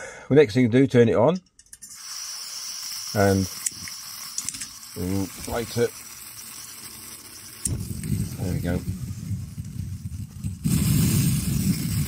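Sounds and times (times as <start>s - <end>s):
camping stove fuel hissing: 1.8s - 12.0s
burner flame rushing rumble: 4.1s - 12.0s.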